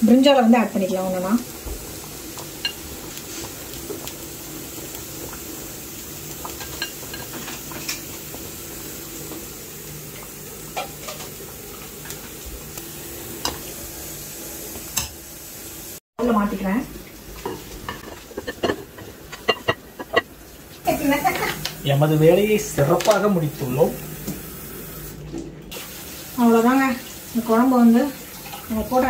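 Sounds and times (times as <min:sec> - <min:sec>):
cooking hiss: 0:00.0 - 0:29.0.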